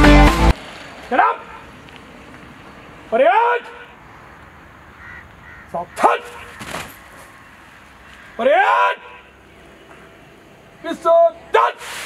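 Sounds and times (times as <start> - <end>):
background music: 0.0 - 0.5
crow caw: 4.9 - 9.3.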